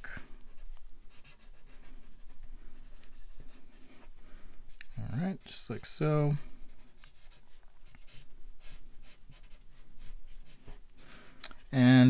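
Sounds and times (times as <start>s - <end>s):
marker rubbing on paper: 0.5s - 5.6s, 6.7s - 10.8s.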